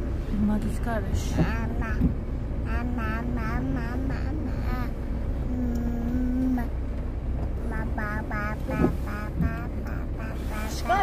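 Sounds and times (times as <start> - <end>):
car cabin rumble while driving: 0.0 - 11.0.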